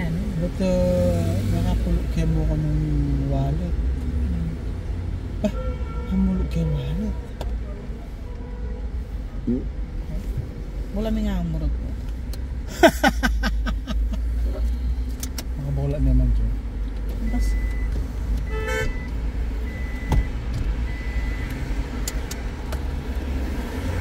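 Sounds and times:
person laughing: 12.7s - 14.3s.

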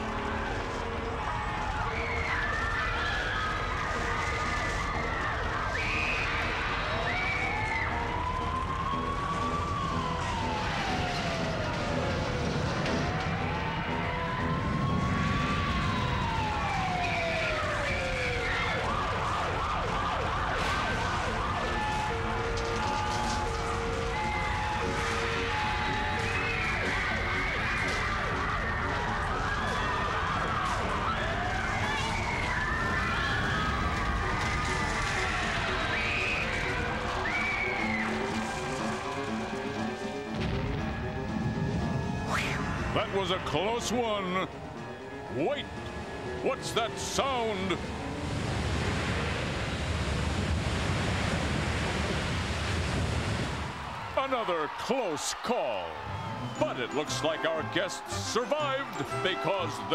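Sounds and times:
siren wailing: 0.0s - 52.4s, 53.5s - 59.9s.

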